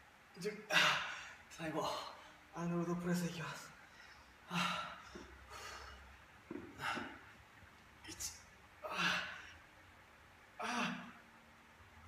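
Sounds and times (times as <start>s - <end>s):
man breathing heavily: 3.8s - 7.3s, 8.8s - 9.6s.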